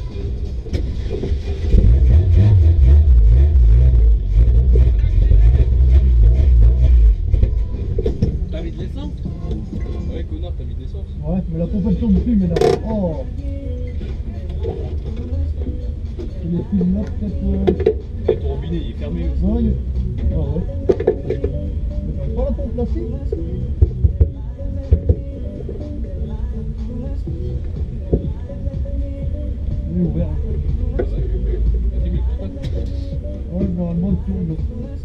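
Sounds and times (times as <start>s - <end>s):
background music: 0.0s - 35.0s
indistinct voices: 0.0s - 35.0s
steady low rumble: 0.0s - 35.0s.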